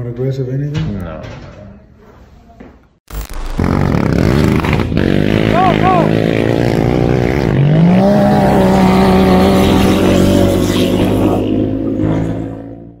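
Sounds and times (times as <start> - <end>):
buggy engine revving: 3.6 - 13.0.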